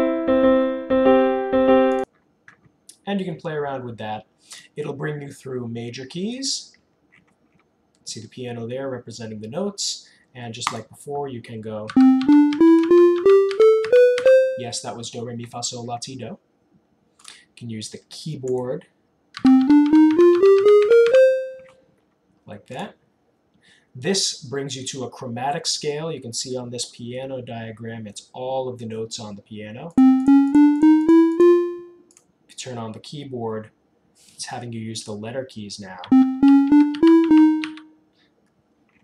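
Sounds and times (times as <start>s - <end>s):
synthesized keyboard ascending scale: 12.0s - 14.8s, 19.4s - 21.7s, 30.0s - 32.1s, 36.1s - 37.9s.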